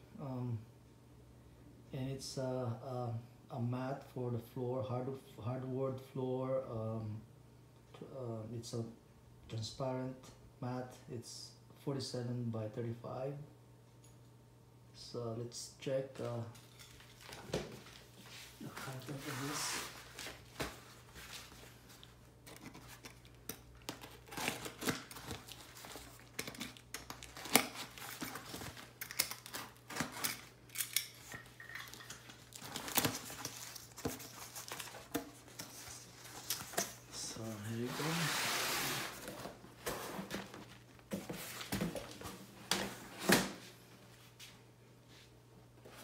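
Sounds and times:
cardboard rustling and tearing: 23.9 - 30.5, 32.2 - 41.9
plastic mat sliding out of box: 37.8 - 40.5.

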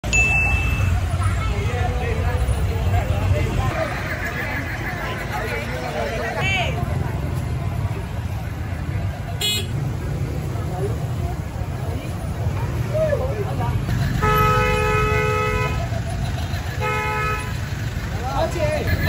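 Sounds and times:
crowd of voices chattering: 0.0 - 19.0
low rumble of traffic: 0.0 - 19.0.

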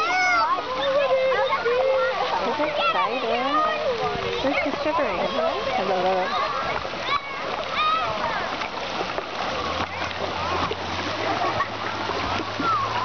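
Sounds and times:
children shouting: 0.0 - 8.6, 9.5 - 13.0
water splashing: 0.0 - 13.0.

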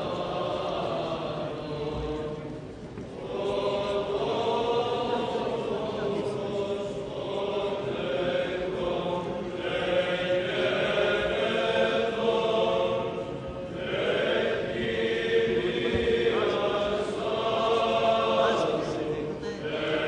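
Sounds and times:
choir chanting long held notes: 0.0 - 20.0.

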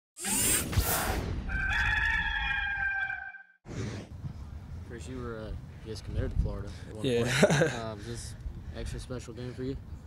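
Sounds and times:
rooster crowing: 1.5 - 3.5.

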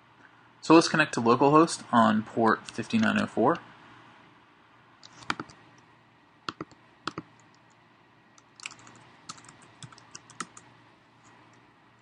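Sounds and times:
computer keyboard typing: 5.0 - 5.6, 6.5 - 7.7, 8.4 - 10.7.

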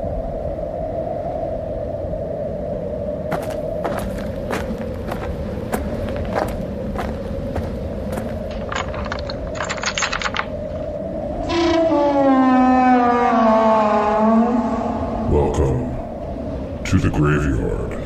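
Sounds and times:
steady low hum: 2.3 - 11.4
long downward sliding tone: 10.8 - 16.7.

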